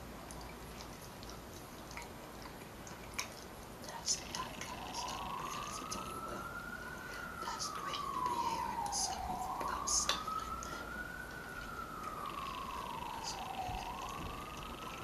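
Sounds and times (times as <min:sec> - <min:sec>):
siren wailing: 0:04.3 - 0:15.0.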